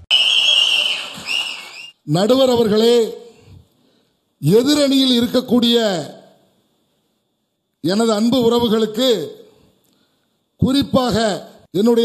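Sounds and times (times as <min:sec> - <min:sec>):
loud high whistle: 0:00.0 - 0:02.0.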